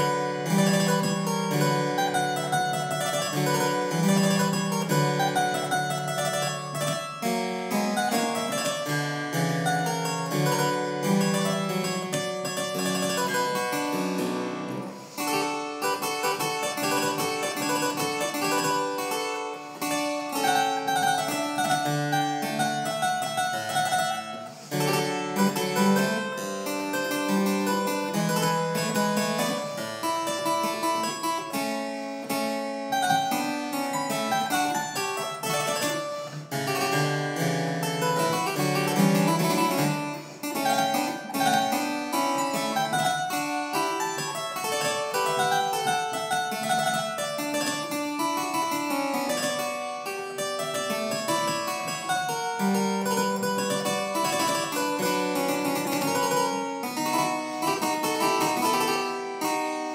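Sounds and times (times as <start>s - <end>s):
harpsichord playing: 0.0s - 59.9s.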